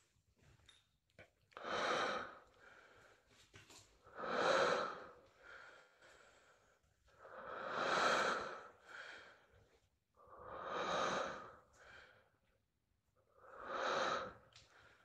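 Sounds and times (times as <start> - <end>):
person breathing heavily: 1.6 - 3.3, 4.1 - 12.4, 13.4 - 15.0.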